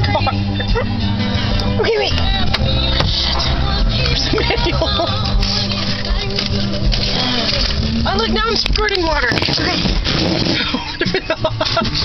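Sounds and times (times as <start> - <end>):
car road and engine noise: 0.0 - 12.0
music playing: 0.0 - 12.0.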